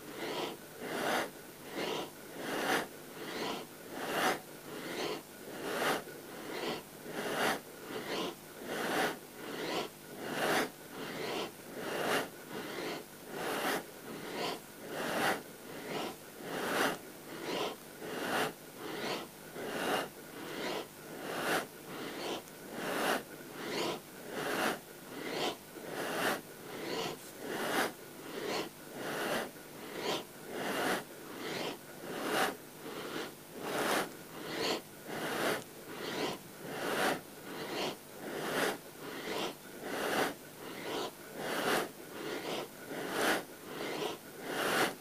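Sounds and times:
person breathing rhythmically: 0:00.0 - 0:45.0.

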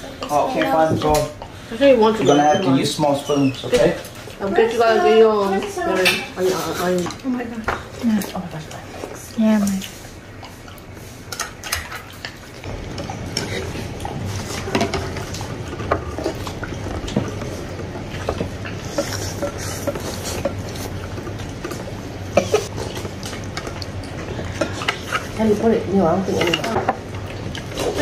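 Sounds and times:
low steady hum: 0:02.9 - 0:28.0
chopsticks and spoons clinking bowls: 0:22.4 - 0:28.0.

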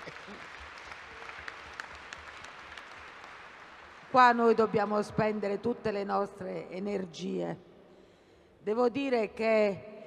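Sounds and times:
audience applauding: 0:00.0 - 0:04.2.

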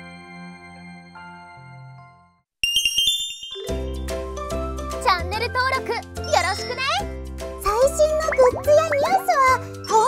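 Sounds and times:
sparkly chime jingle: 0:02.6 - 0:04.4
upbeat children's music: 0:02.6 - 0:10.0
high cartoon voice speaking: 0:07.7 - 0:10.0.

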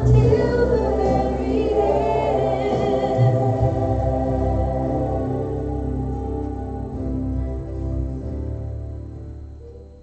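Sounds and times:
group of voices singing: 0:00.0 - 0:07.5.

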